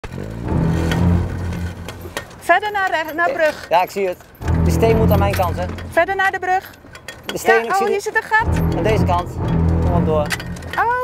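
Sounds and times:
car engine low hum: 0.0s - 2.4s, 8.4s - 11.0s.

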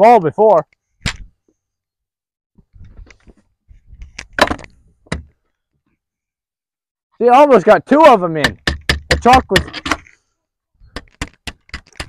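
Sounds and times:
sharp cracks and knocks: 1.0s - 1.3s, 4.0s - 5.4s, 8.4s - 10.1s, 10.9s - 12.0s.

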